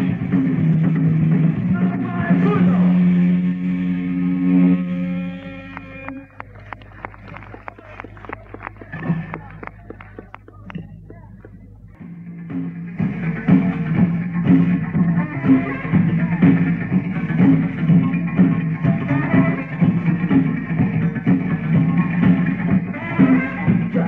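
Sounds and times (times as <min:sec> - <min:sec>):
guitar and drums: 0:00.0 - 0:02.8, 0:08.8 - 0:24.0
rock band held chord: 0:12.0 - 0:24.0.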